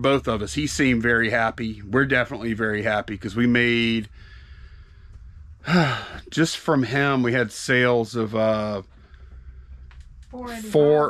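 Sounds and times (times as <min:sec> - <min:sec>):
breathy intake of breath: 0:04.1 - 0:06.3
person speaking: 0:10.4 - 0:11.0.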